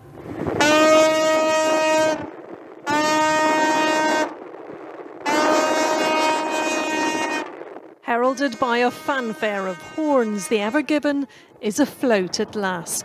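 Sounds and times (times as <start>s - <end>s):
tugboat horn blasts: 0.5s - 4.5s, 5.2s - 11.4s.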